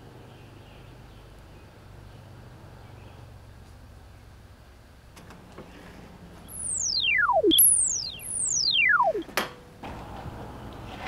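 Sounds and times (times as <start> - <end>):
electronic tones sliding down: 6.5 - 9.3.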